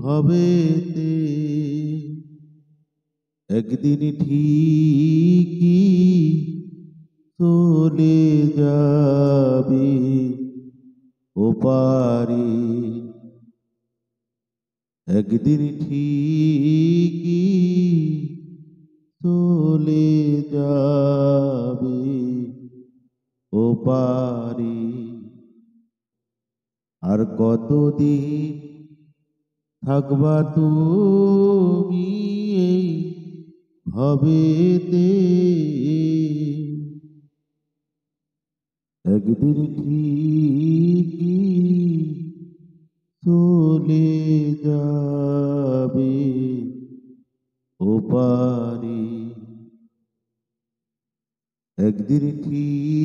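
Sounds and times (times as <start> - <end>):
man singing unaccompanied: 0.0 - 2.3, 3.5 - 6.8, 7.4 - 10.5, 11.4 - 13.3, 15.1 - 18.5, 19.2 - 22.6, 23.5 - 25.4, 27.0 - 28.8, 29.8 - 37.0, 39.0 - 42.4, 43.2 - 46.8, 47.8 - 49.6, 51.8 - 53.0.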